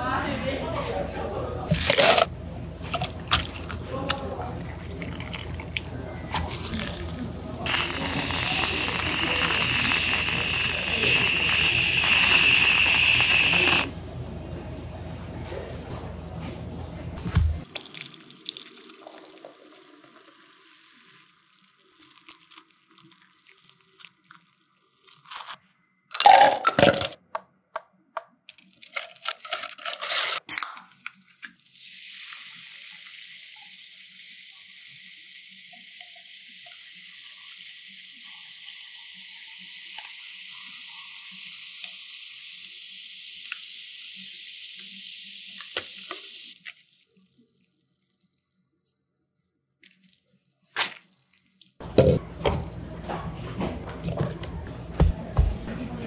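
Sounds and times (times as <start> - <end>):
drink fizzing in a glass: 3.2 - 13.9, 17.6 - 25.1.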